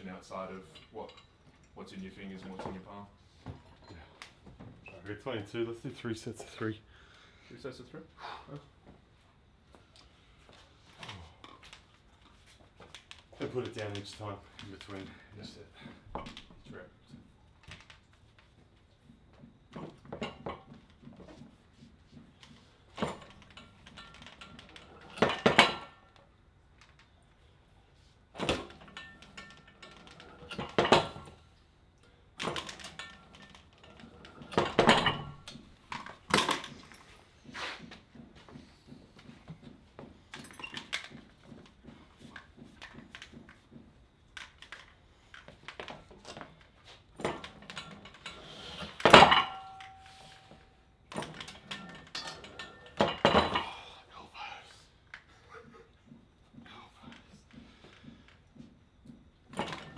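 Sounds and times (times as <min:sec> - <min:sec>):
weight plates clanking: 0:32.4 - 0:37.6, 0:47.2 - 0:53.8.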